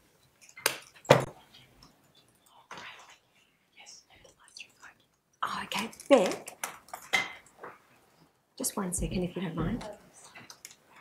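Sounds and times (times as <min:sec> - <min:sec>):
faint clicks and rustles: 0:00.0 - 0:08.4, 0:09.0 - 0:11.0.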